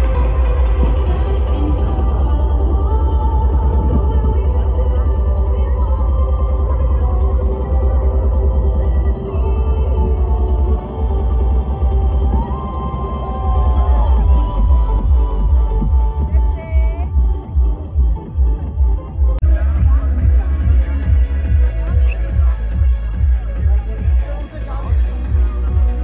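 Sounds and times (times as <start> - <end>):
trance music with pounding bass: 0.0 - 26.0.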